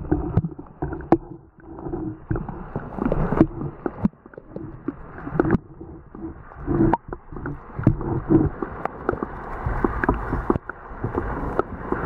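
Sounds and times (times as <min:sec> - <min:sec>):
muffled underwater sloshing: 0:00.0 - 0:12.0
sharp underwater knocks: 0:00.0 - 0:12.0.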